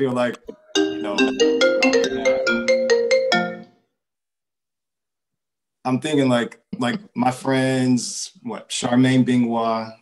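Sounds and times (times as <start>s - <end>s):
phone ringtone melody: 0.6s - 3.8s.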